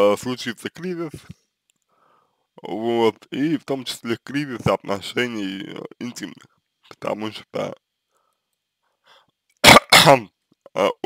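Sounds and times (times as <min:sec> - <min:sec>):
man coughing: 0:09.6 - 0:10.3.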